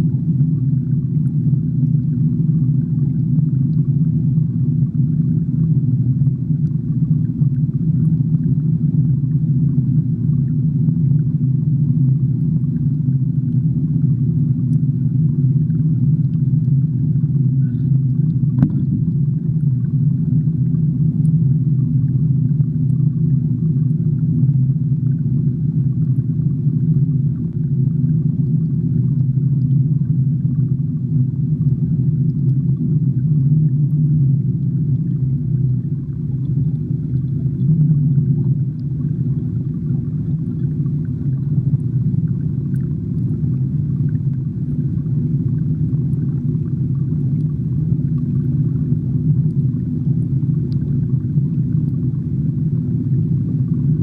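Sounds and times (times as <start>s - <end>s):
aquarium pump humming: 0.0s - 54.0s.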